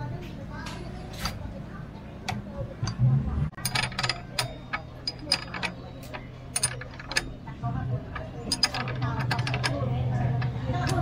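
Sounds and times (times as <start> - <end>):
sharp metal clicks: 2.2 - 11.0.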